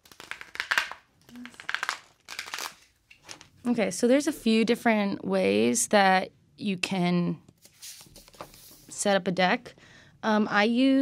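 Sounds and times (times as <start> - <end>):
cards being shuffled: 0.0 - 3.6, 7.6 - 9.0.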